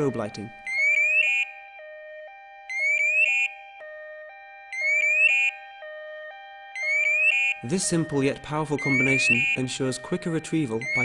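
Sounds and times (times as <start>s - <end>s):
rising alarm whoops: 4.3s - 11.0s.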